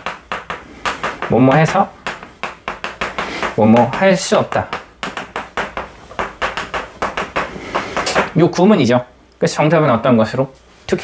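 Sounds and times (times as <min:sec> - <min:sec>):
chalk tapping and scratching: 0:00.0 - 0:08.4.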